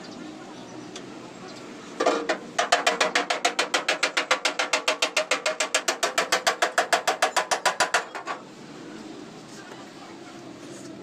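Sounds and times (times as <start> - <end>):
rapid metallic tapping: 2.3 - 8.3.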